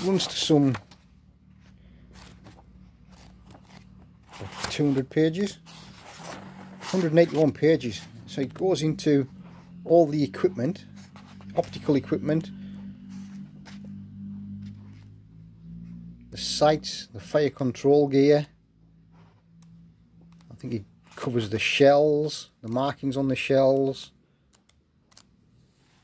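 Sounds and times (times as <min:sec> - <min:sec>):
book pages turning: 0:00.0 - 0:09.0, 0:10.1 - 0:15.2, 0:23.4 - 0:26.0
low steady hum: 0:00.0 - 0:17.8.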